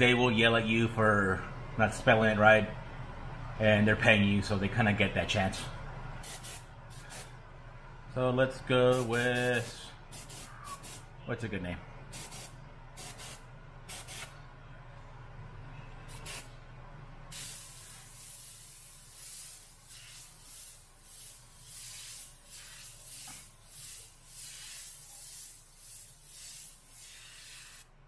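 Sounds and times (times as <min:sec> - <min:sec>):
steady low hum: 0:00.0 - 0:28.0
airbrush spraying hiss: 0:06.2 - 0:07.3, 0:08.9 - 0:11.0, 0:12.2 - 0:14.3, 0:16.1 - 0:16.5, 0:17.3 - 0:27.9.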